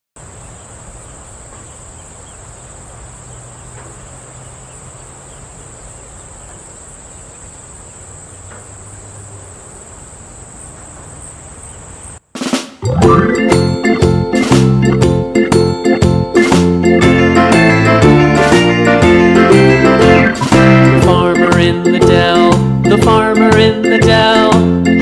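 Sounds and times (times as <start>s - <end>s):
crickets trilling: 0.2s - 12.3s.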